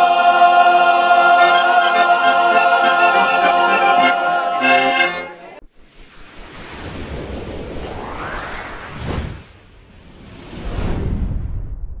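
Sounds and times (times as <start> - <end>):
rising pitch sweep: 1.0 - 9.4
synthesized whoosh: 5.6 - 12.0.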